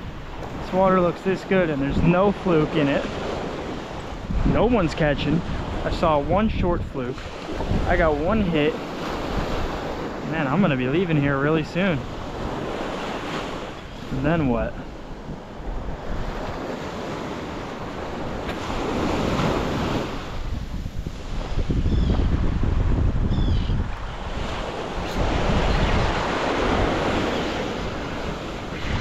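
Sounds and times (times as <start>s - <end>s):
surf waves breaking on sand: 0.0s - 29.0s
wind buffeting microphone: 3.2s - 29.0s.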